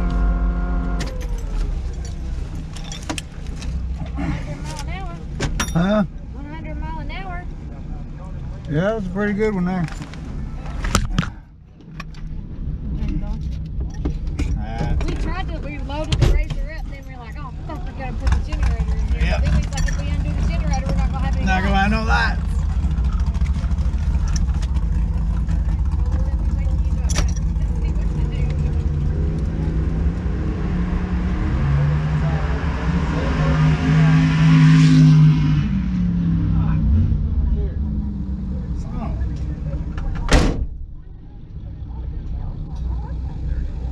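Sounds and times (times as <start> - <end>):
car engine rumbling: 0.0 - 43.9
engine note climbing: 0.0 - 43.9.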